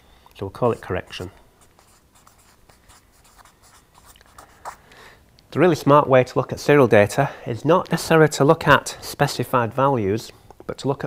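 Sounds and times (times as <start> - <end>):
marker scratching on paper: 0.6 - 4.8.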